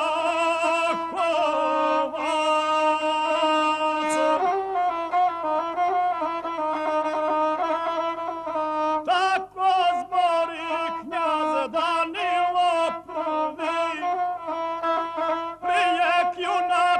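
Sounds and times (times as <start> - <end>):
bowed single-string fiddle melody: 0.0 - 16.9.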